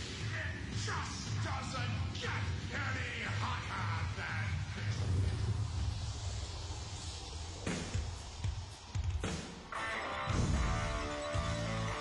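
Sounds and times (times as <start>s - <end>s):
hard rock band playing: 9.7s - 12.0s
sustained guitar chords: 9.8s - 12.0s.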